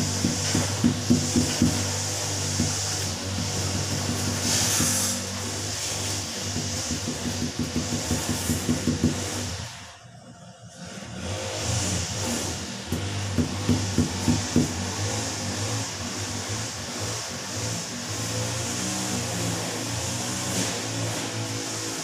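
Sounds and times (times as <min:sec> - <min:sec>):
fist knocking on tile: 0:00.0 - 0:05.2, 0:06.4 - 0:09.6, 0:12.9 - 0:15.3.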